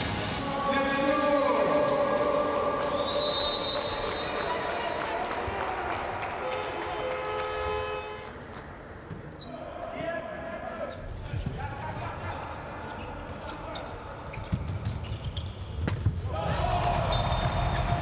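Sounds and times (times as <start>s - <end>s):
ball bouncing on court floor: 13.8s - 16.3s
players shouting: 16.3s - 18.0s.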